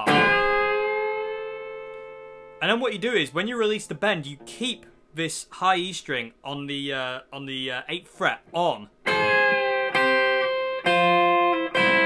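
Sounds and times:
electric guitar double stop ringing: 0.0 - 2.6, 9.1 - 12.0.

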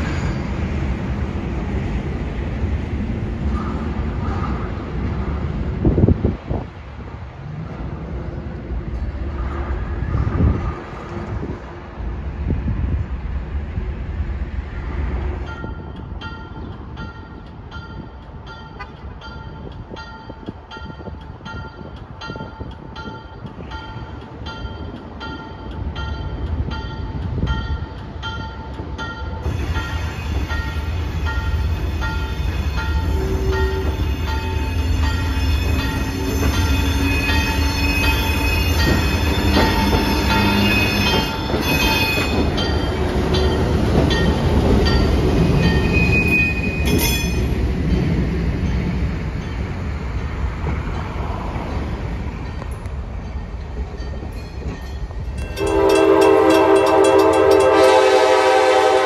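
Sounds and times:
railroad crossing bell ringing: 15.4 - 48.8, 52.4 - 59.0.

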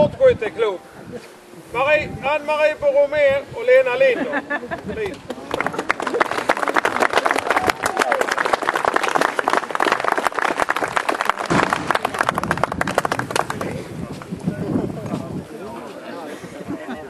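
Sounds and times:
crowd applauding: 5.3 - 13.8.

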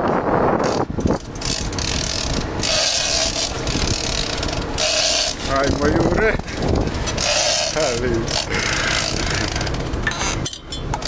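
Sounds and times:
fishing reel ratcheting: 0.6 - 11.0.

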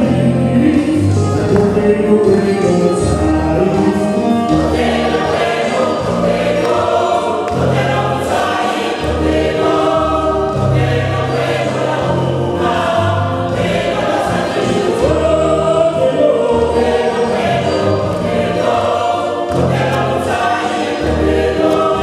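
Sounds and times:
choir singing gospel in harmony: 0.0 - 22.0
keyboard bass notes: 0.0 - 22.0.

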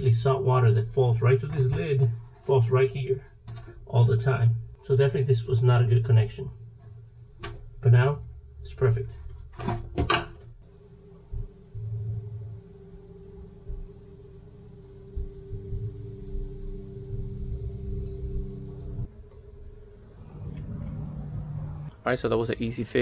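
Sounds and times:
electrical hum: 0.0 - 23.0.

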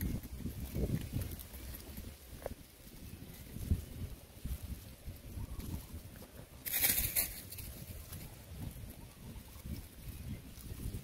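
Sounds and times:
dry leaves crackling underfoot: 0.0 - 11.0.

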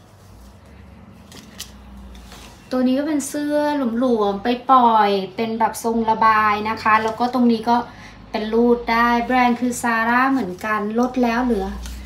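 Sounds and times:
fabric rustling: 0.0 - 2.9, 9.5 - 12.0
woman speaking: 2.7 - 12.0.

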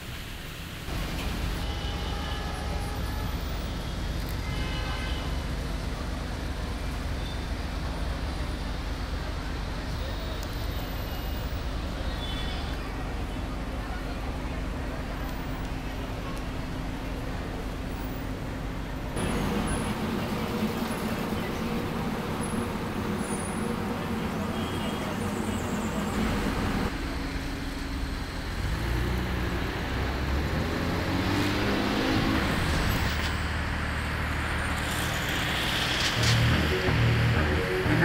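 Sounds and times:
cars passing: 13.0 - 38.0
music playing: 36.2 - 38.0.

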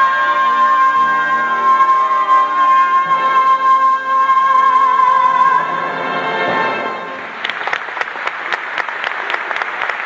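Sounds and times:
audience applauding: 7.2 - 10.0.

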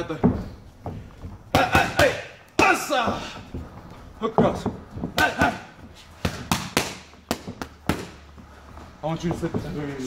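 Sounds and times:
boxing gloves punching mitts: 0.0 - 9.8.

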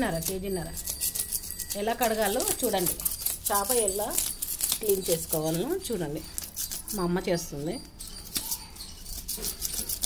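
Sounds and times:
knife scraping fish scales: 0.0 - 10.0.

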